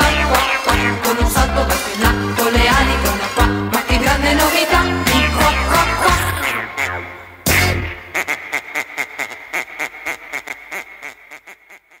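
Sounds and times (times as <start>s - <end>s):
duck quacking rapidly: 4.9s - 12.0s.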